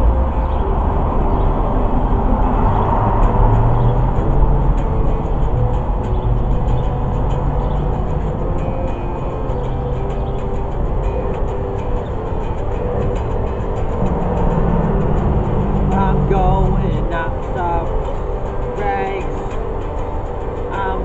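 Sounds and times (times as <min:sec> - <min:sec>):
electric guitar strumming chords: 0:00.0 - 0:21.0.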